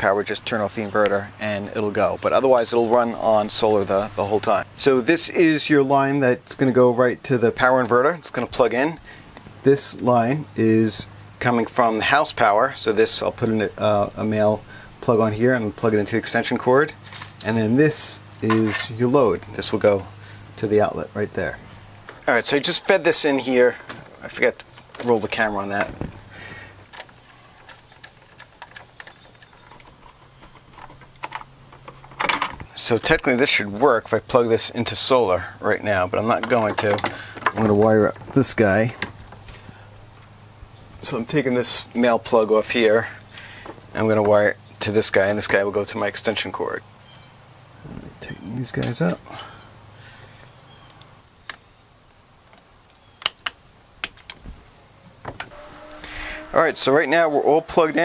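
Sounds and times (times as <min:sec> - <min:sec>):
steady low hum: 0:00.0 - 0:53.0, 0:53.6 - 0:58.0.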